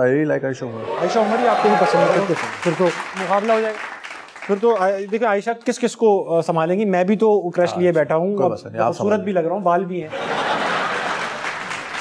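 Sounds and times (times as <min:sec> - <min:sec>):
audience applauding: 0:00.8 - 0:05.4, 0:10.2 - 0:12.0.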